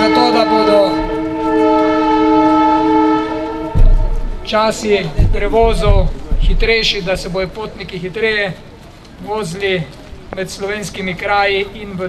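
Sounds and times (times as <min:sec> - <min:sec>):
train horn chord: 0:00.0 - 0:04.5
low thump: 0:03.6 - 0:04.4, 0:05.0 - 0:06.9.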